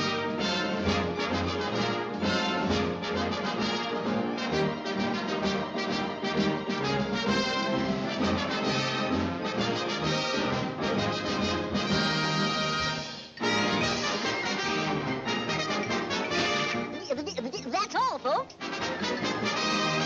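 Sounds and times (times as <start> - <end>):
brass orchestral cartoon music: 0.0 - 20.0.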